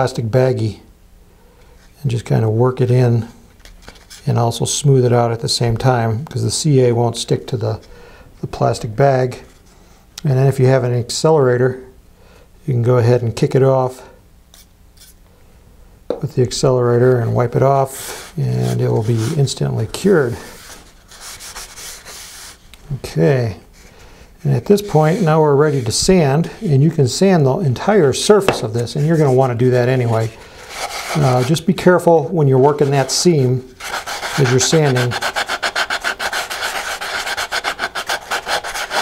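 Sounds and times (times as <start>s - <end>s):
hand rubbing stiff paper: 17.0s - 22.7s, 23.7s - 27.2s, 27.8s - 39.0s.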